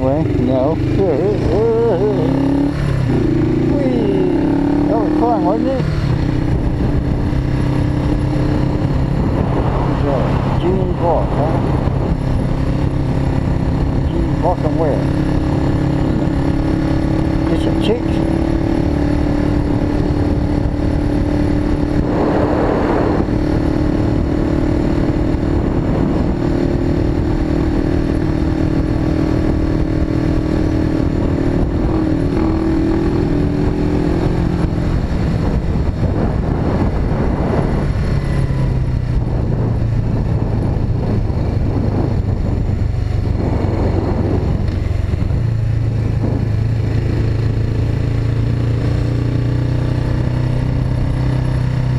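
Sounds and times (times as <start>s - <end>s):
motorcycle engine cruising: 0.0s - 51.9s
wind rushing over microphone: 0.0s - 51.9s.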